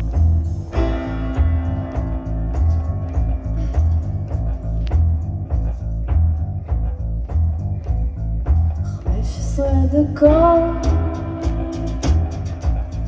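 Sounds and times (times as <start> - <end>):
keyboard chords: 0.0 - 8.5
electric bass line: 0.0 - 13.0
steady drum beat: 0.0 - 13.0.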